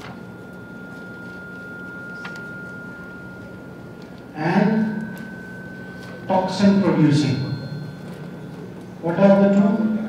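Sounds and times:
low hum: 0.0s - 9.1s
high-pitched electrical whine: 0.0s - 10.0s.

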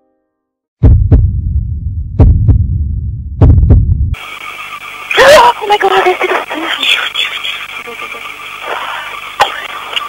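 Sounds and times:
heartbeat thumps: 0.8s - 4.2s
static hiss: 4.2s - 10.0s.

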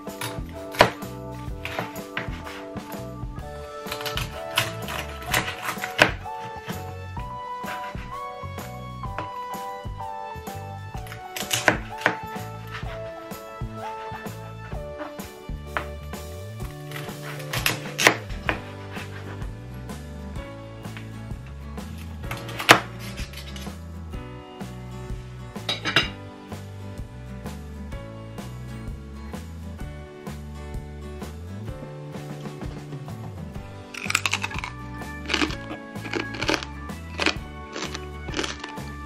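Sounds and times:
background music: 0.0s - 39.0s
knife cutting crisp crackling: 0.1s - 2.8s, 3.8s - 7.0s, 7.6s - 8.2s, 11.1s - 13.0s, 16.9s - 19.4s, 22.0s - 23.7s, 34.0s - 39.0s.

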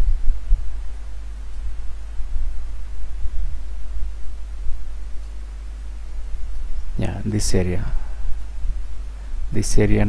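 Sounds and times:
low pulsing rumble: 0.0s - 5.2s.

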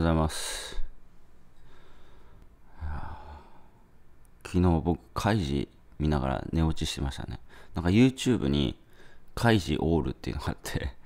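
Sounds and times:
man breathing through nose: 1.6s - 3.8s.

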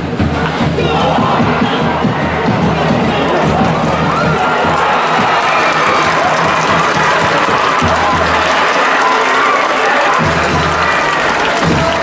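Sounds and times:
cheering band music: 0.0s - 12.0s
stadium crowd cheering and shouting: 0.0s - 12.0s.

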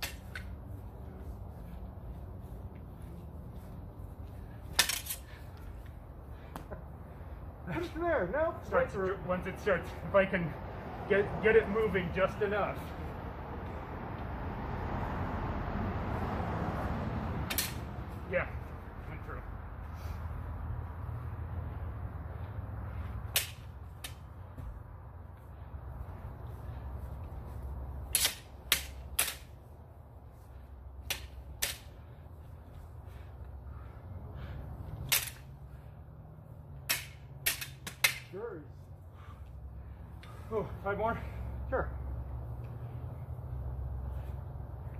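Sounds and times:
swords clacking together: 4.8s - 5.2s, 17.5s - 17.8s, 23.3s - 24.2s, 28.1s - 29.5s, 35.0s - 35.4s, 36.8s - 38.3s.

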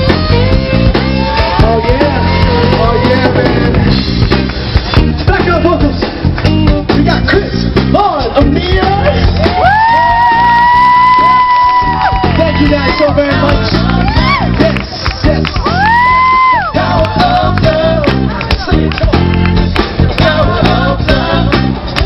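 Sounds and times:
drum kit: 0.0s - 22.0s
guitar: 0.0s - 22.0s.

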